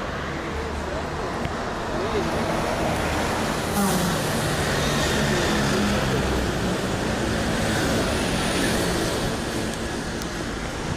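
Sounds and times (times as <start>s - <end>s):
passing vehicles: 0.0s - 10.9s.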